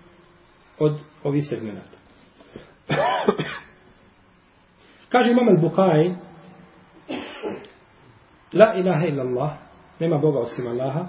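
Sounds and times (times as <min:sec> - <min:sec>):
man clearing his throat: 0:02.9 - 0:03.8, 0:07.0 - 0:07.8.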